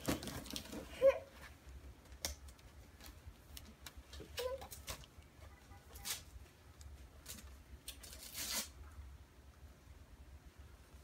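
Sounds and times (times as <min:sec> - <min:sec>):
wrapping paper rustling and tearing: 0:00.0 - 0:01.2, 0:05.9 - 0:06.4, 0:07.2 - 0:08.8.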